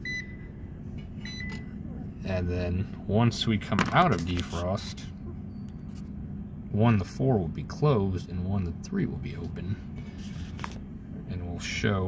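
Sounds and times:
clamp meter beeping: 0:00.0 - 0:00.5, 0:01.2 - 0:01.7
steady low hum: 0:00.0 - 0:12.0.

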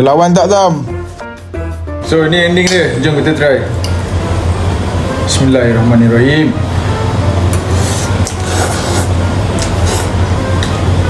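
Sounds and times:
person slurping noodles: 0:07.7 - 0:10.2.

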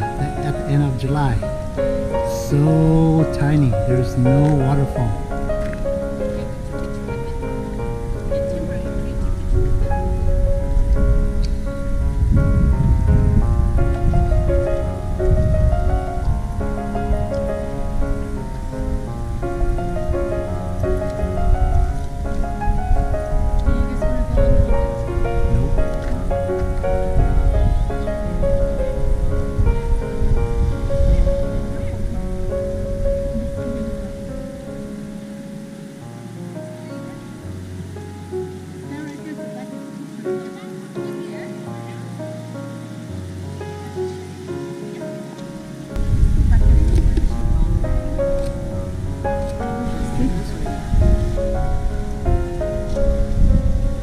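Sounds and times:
low rumble: 0:00.0 - 0:35.3, 0:46.0 - 0:54.0
piano melody: 0:00.0 - 0:54.0.

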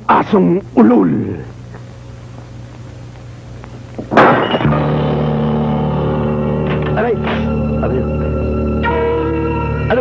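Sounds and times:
loud orchestral hit: 0:04.2 - 0:07.6
held low chord: 0:04.6 - 0:10.0.

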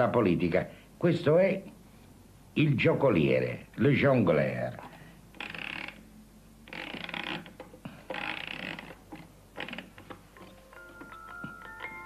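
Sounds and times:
clockwork ratcheting: 0:05.3 - 0:06.0, 0:06.7 - 0:12.0.

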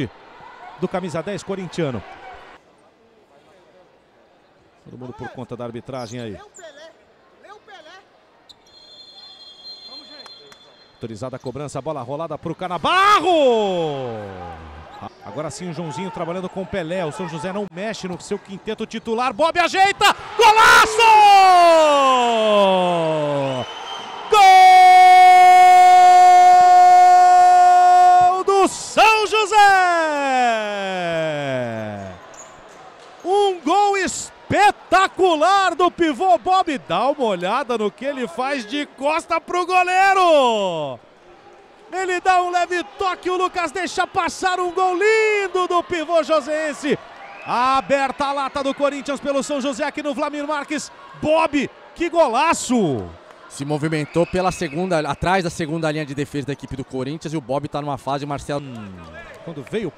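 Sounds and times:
distant shouting voices: 0:19.8 - 0:32.2.

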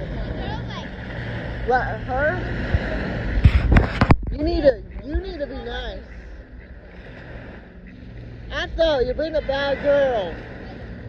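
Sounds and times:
small waves washing on beach: 0:00.0 - 0:11.0
wind rumble on microphone: 0:00.0 - 0:11.0.

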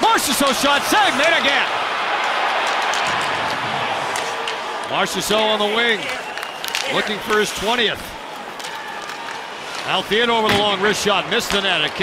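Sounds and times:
skates and sticks on ice: 0:00.3 - 0:12.0.

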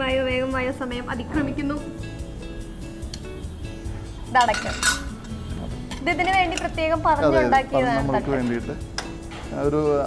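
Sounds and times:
background music: 0:00.0 - 0:10.0
metal utensils clinking: 0:04.2 - 0:09.8.

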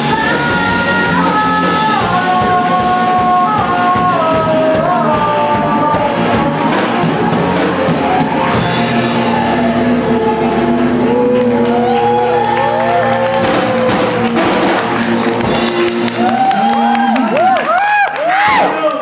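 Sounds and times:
live rock band sustained chord: 0:00.0 - 0:17.2.

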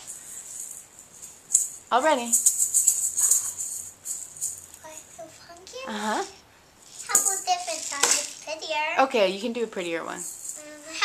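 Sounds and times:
toy rattle shaking: 0:00.0 - 0:05.3, 0:06.1 - 0:11.0.

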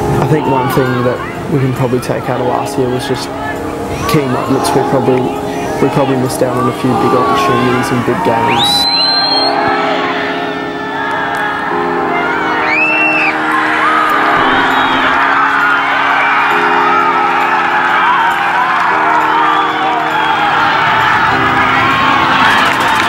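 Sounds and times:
background music sustained chords: 0:00.0 - 0:23.0
crowd cheering and whooping: 0:06.5 - 0:23.0.

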